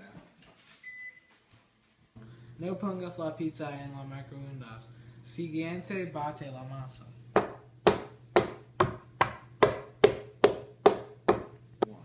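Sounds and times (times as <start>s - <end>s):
utensil knocking crust on wood: 7.4s - 11.6s.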